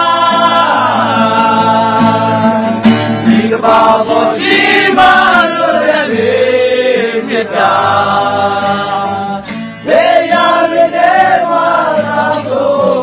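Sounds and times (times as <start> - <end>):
men singing in unison: 0.0 - 13.0.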